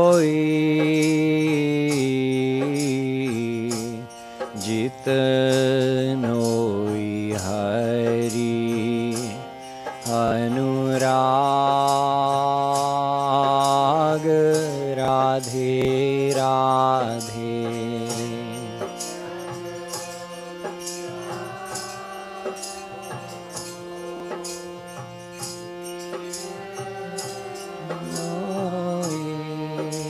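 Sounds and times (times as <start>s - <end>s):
harmonium drone and chords: 0.0s - 30.0s
man singing: 0.0s - 30.0s.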